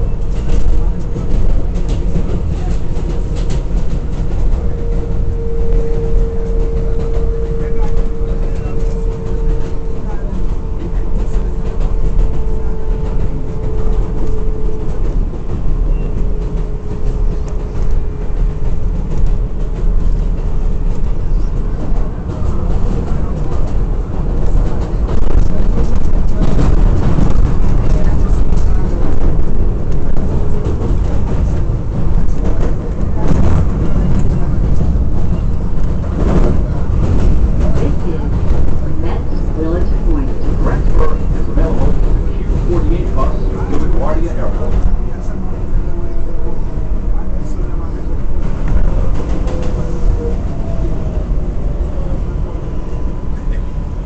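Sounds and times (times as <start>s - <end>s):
train clattering: 0.0s - 54.0s
train wheels rumbling on rail: 0.0s - 54.0s.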